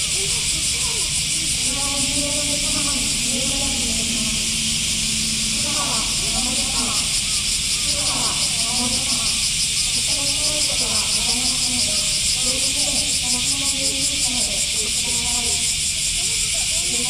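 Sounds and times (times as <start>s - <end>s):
cicadas buzzing: 0.0s - 17.0s
people talking faintly: 0.0s - 17.0s.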